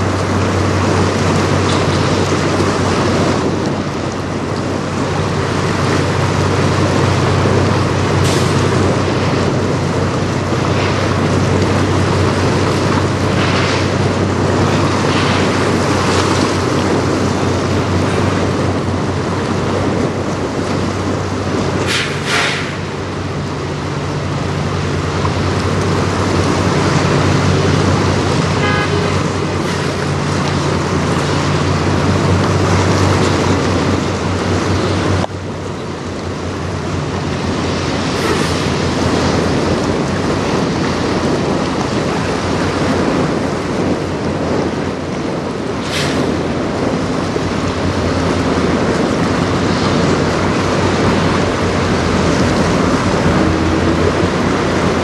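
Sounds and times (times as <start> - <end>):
ship machinery droning: 0.0 - 55.0
water noise: 0.0 - 55.0
wind: 0.0 - 55.0.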